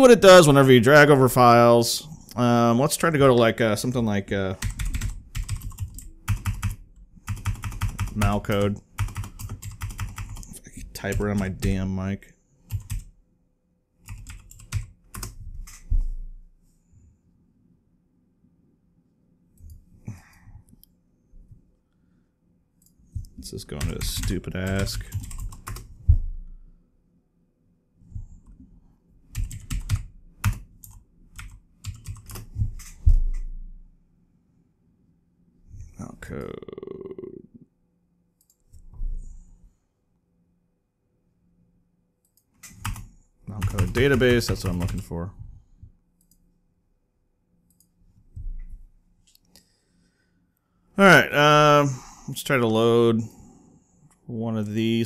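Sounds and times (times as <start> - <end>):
computer keyboard typing: 4.6 - 11.8, 12.7 - 13.1, 14.0 - 15.8, 23.7 - 25.9, 29.3 - 33.0, 42.6 - 45.1.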